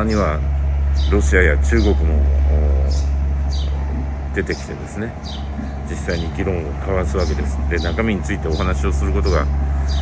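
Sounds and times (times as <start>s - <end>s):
high bird chirps: 0.0s - 10.0s
loud low rumble: 0.0s - 10.0s.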